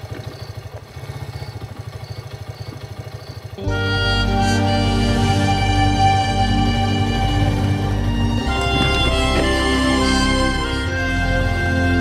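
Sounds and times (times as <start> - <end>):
small motorcycle engine idling: 0.0 - 12.0
loud music: 3.6 - 12.0.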